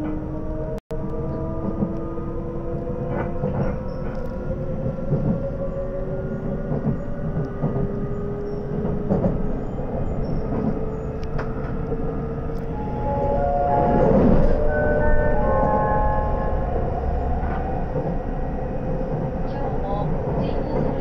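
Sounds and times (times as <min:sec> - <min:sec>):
train running rumble: 0:00.0 - 0:21.0.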